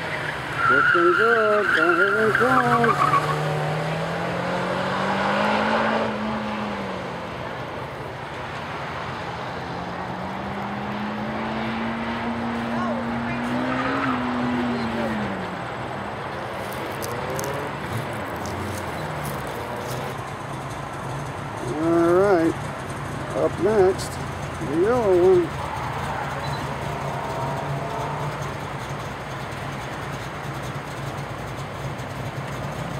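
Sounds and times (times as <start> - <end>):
car engine accelerating hard: 0.0 - 7.7, 8.5 - 32.9.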